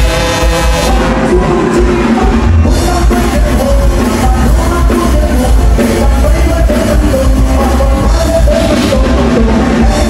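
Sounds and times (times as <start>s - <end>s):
live band with electric guitars: 0.0s - 10.0s.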